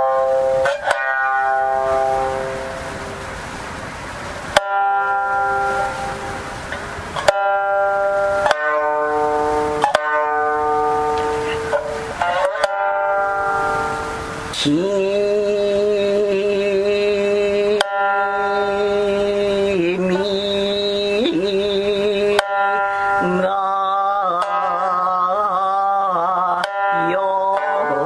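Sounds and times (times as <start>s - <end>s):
shamisen plucked notes: 0.0s - 14.6s, 16.0s - 28.0s.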